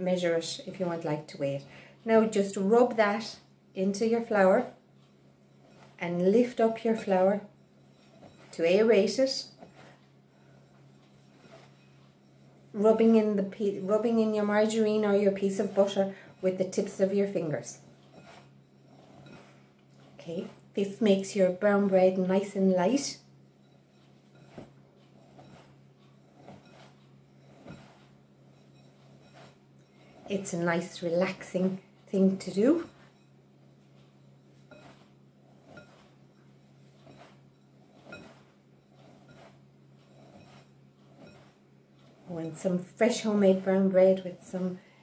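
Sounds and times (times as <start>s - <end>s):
low steady hum: 0.0s - 45.0s
fingertips rubbing butter into flour: 2.1s - 44.7s.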